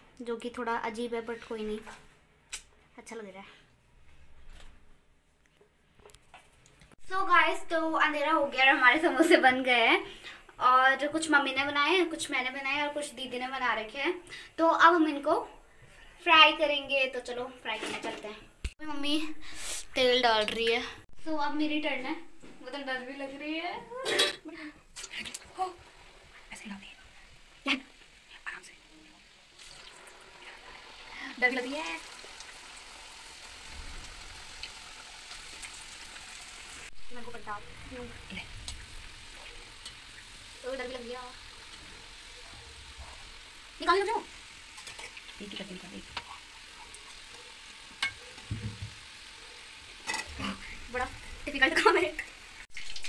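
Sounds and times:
food sizzling in hot oil: 7.0s - 15.3s, 16.4s - 20.4s, 24.9s - 53.0s.

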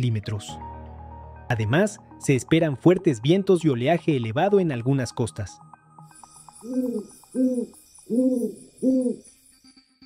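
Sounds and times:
faint high shimmering tone: 6.0s - 10.0s
owl hooting: 6.6s - 9.3s.

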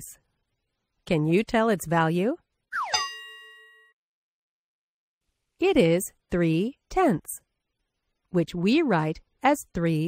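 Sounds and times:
bell-like ding: 2.8s - 4.0s.

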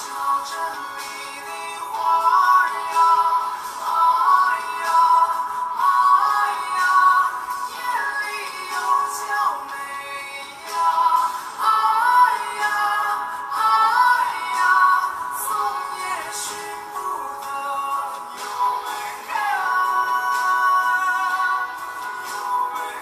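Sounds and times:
backing music: 0.0s - 23.0s
man singing pop melody: 0.0s - 23.0s.

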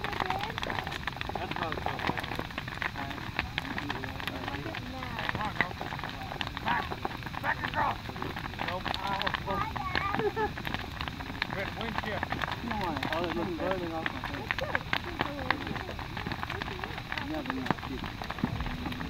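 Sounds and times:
people talking: 0.0s - 10.7s, 11.4s - 19.0s
bonfire crackling and popping: 0.0s - 19.0s.

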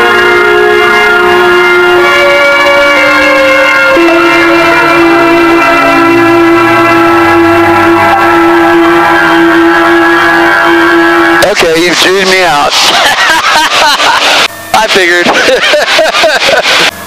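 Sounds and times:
person speaking: 11.4s - 13.0s, 14.2s - 16.9s.

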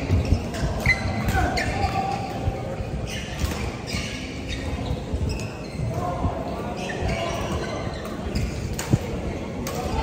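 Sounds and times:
sneakers squeaking on floor: 0.0s - 10.0s.

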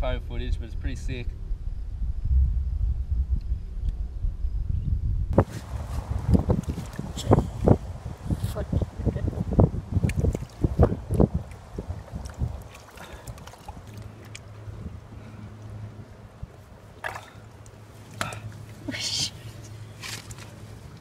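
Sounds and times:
low steady hum: 0.0s - 21.0s
microphone bumps and scuffs: 5.4s - 8.6s.

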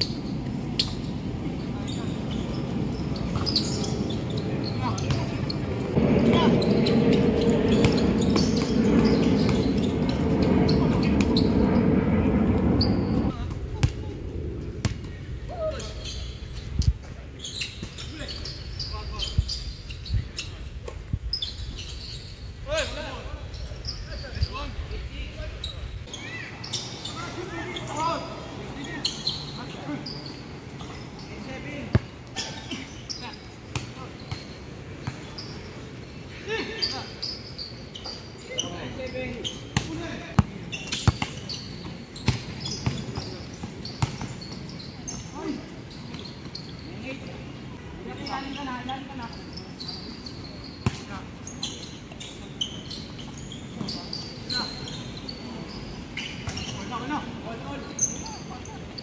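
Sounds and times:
basketball bouncing on hard court: 42.2s - 44.6s.

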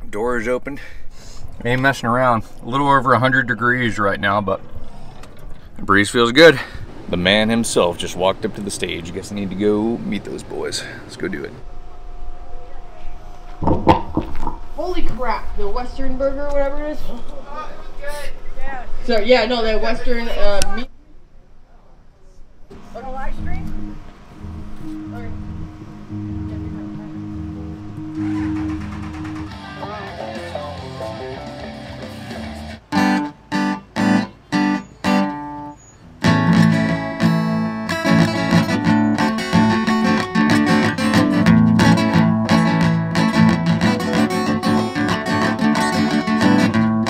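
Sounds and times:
short stopped band chords: 22.8s - 47.0s
live rock band playing: 23.8s - 47.0s.

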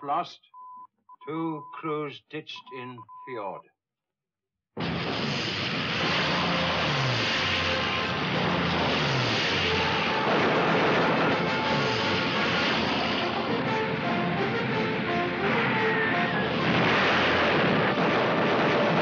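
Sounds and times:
aircraft engine roar: 4.8s - 19.0s
orchestral film score: 9.6s - 19.0s.

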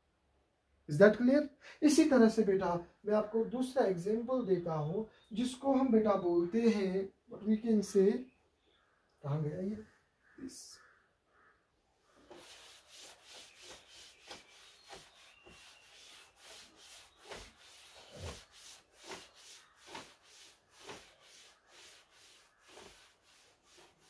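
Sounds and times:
cloth rubbing chalkboard: 12.1s - 24.0s.

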